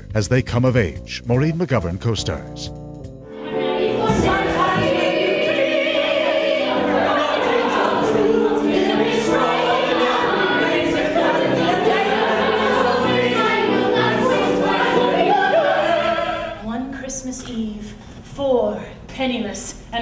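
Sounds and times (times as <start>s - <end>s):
musical accompaniment: 0.0s - 16.6s
voices singing musical number: 3.2s - 16.8s.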